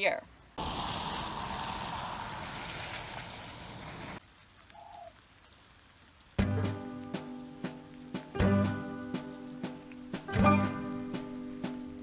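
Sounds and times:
rain falling: 0.0 - 12.0
background music: 6.4 - 12.0.

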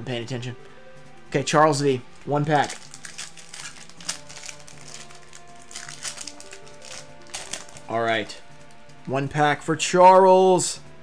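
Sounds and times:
background music: 0.0 - 11.0
foil wrapper tearing and crinkling: 2.5 - 8.0.

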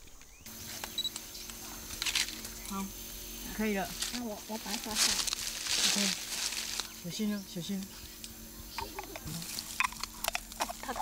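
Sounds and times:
leaves and twigs crackling: 0.0 - 11.0
quiet voices: 0.5 - 11.0.

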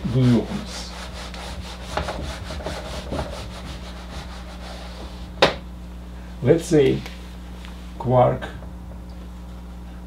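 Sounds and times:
eraser scrubbing whiteboard: 0.0 - 5.3.

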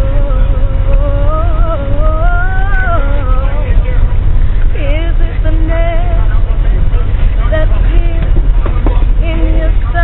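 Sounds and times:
bus engine rumble: 0.0 - 10.0
road noise: 0.0 - 10.0
voice: 4.8 - 10.0.

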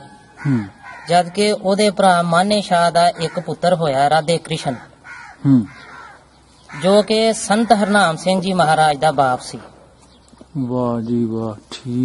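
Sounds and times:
bird cawing: 0.0 - 1.6, 2.6 - 9.4.

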